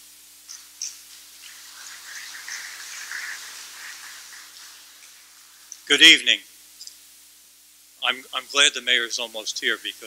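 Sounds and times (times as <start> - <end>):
audience applause: 1.5 - 5.7.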